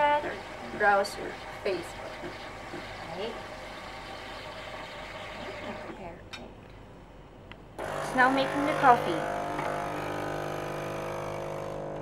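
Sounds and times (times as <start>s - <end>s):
espresso machine humming: 0.0s - 6.0s, 7.8s - 12.0s.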